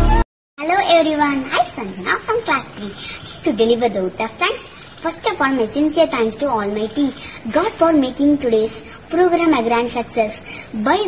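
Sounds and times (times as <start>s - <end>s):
girl speaking: 0.6s - 11.0s
high-pitched hiss: 0.6s - 11.0s.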